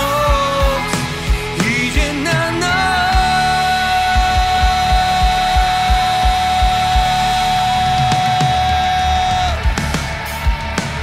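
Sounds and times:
rock band playing: 0.0 - 11.0
kick drum beat: 4.1 - 11.0.

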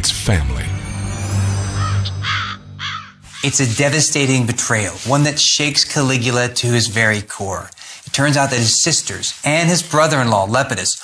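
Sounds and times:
low music drone: 0.0 - 3.5
crow cawing: 1.8 - 3.6.

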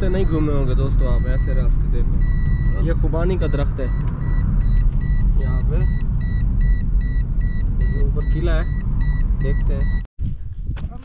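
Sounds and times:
rapid high electronic beeps: 0.0 - 10.1
road and engine rumble: 0.0 - 11.0.

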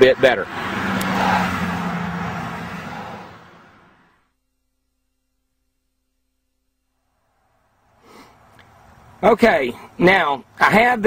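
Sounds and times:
vehicle passing by: 0.0 - 4.3.

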